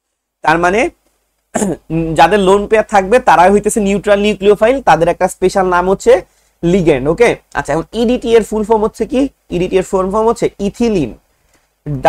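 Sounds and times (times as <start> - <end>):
man lecturing: 0.4 - 1.0, 1.6 - 11.2
man clearing throat: 1.5 - 1.9.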